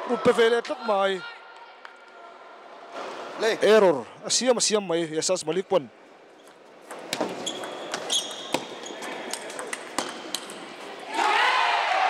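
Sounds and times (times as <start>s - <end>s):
high squeak: 7.4s - 9.1s
crowd cheering and shouting: 11.1s - 12.0s.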